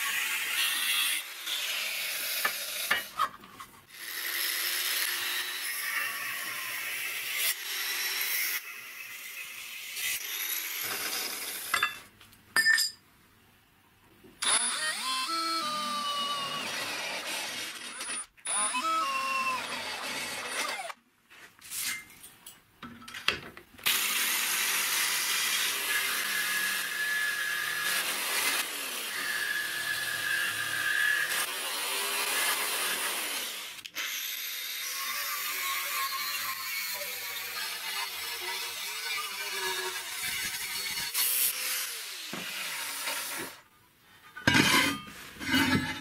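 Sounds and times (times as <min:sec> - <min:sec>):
angle grinder cutting steel: 0:00.0 - 0:03.2, 0:23.9 - 0:43.6, 0:44.3 - 0:46.0
jigsaw cutting steel tube: 0:00.0 - 0:12.0, 0:14.4 - 0:21.0, 0:23.8 - 0:43.7, 0:44.3 - 0:46.0.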